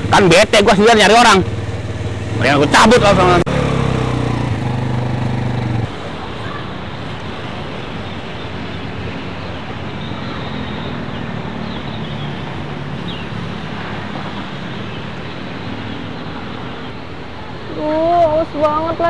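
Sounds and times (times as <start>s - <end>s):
distant traffic rumble: 0.0s - 19.0s.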